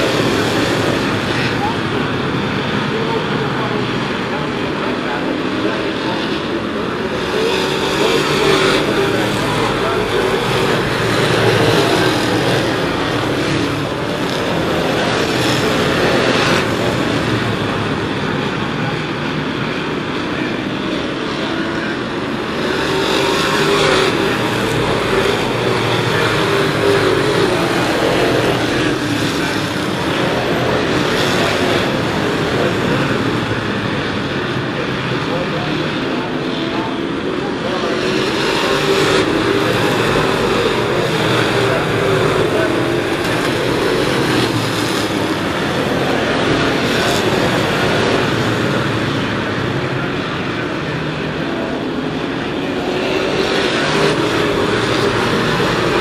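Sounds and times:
stock cars racing: 0:00.0 - 0:56.0.

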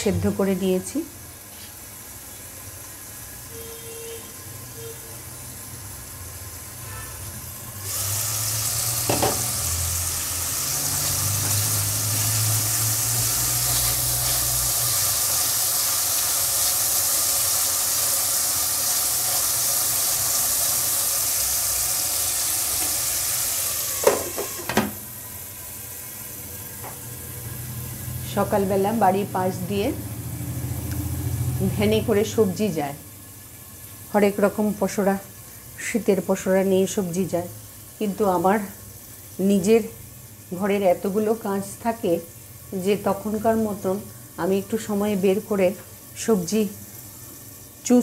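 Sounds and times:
potatoes sizzling in oil: 0:00.0 - 0:48.0
lid clanking: 0:09.1 - 0:09.5, 0:24.0 - 0:25.0.

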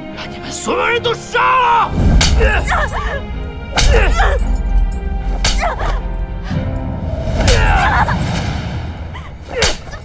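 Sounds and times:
low steady music drone: 0:02.1 - 0:08.3
person crying out in pain: 0:07.5 - 0:08.1.

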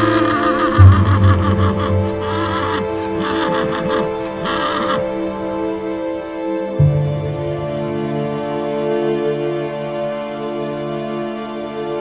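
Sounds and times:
horse whinnying: 0:00.0 - 0:05.2
film score music: 0:00.0 - 0:12.0.

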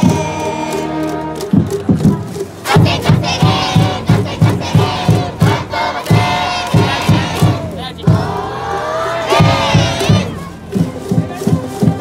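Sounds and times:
steady drum beat: 0:00.0 - 0:12.0
crowd chanting in unison: 0:02.6 - 0:12.0.

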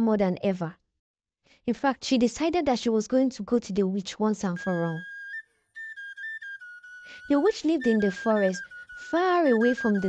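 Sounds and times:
high whistle-like melody: 0:04.6 - 0:10.0.

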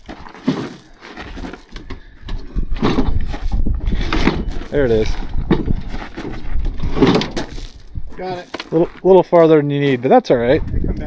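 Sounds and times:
wooden crate scraping: 0:00.0 - 0:09.0.

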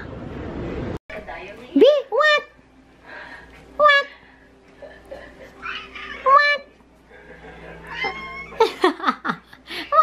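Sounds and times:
cat meowing: 0:07.8 - 0:08.6.

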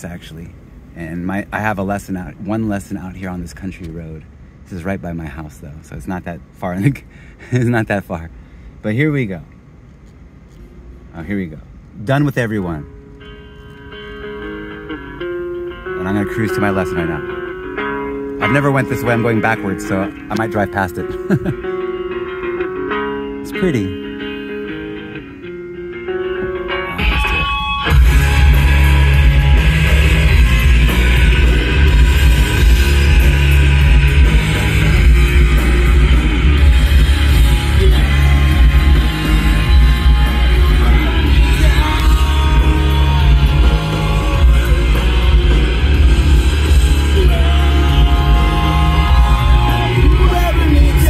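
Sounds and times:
rock band with bass and drums: 0:13.0 - 0:51.0
electric guitar: 0:21.1 - 0:51.0.

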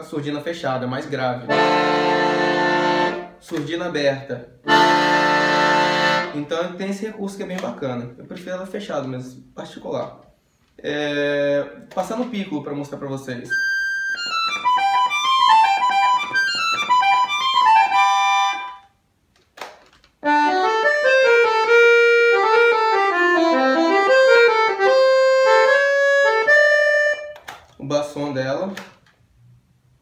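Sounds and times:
accordion playing: 0:01.4 - 0:03.6, 0:04.6 - 0:06.6, 0:13.5 - 0:18.9, 0:20.2 - 0:27.6.

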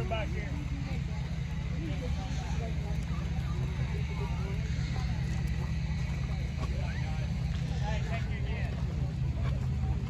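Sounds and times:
background voices talking: 0:00.0 - 0:10.0
steady low rumble: 0:00.0 - 0:10.0.

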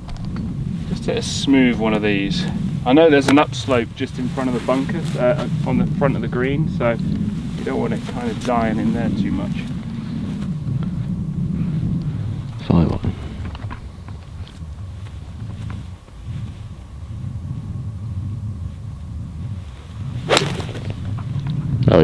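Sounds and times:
wind rumbling on microphone: 0:00.0 - 0:22.0
golf club striking ball: 0:20.2 - 0:21.3.

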